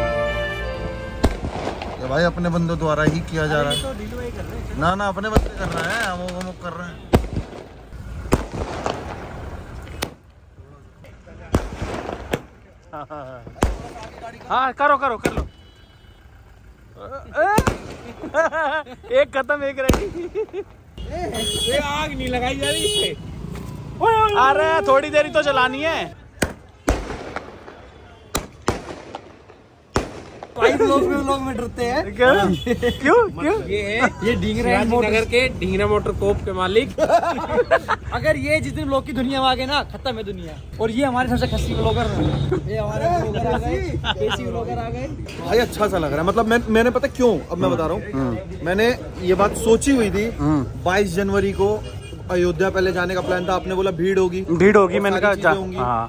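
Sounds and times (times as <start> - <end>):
firework pops and crackle: 1.2 - 2.2, 3.0 - 3.3, 5.3 - 10.4, 11.5 - 12.8, 13.5 - 14.5, 17.5 - 18.3, 19.8 - 20.8, 26.3 - 30.7
firework bang: 1.2 - 2.4, 5.3 - 10.2, 11.5 - 12.6, 13.6 - 14.2, 17.5 - 18.4, 19.8 - 20.7, 26.4 - 30.8.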